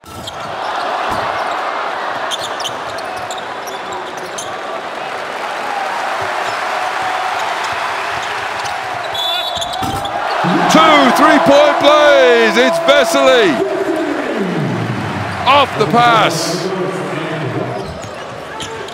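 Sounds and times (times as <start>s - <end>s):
arena crowd noise: 0.0s - 18.9s.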